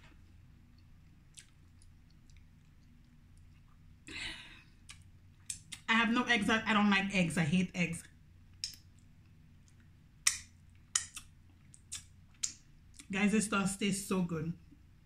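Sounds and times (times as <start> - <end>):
woman speaking: 5.8 - 8.1, 13.0 - 14.6.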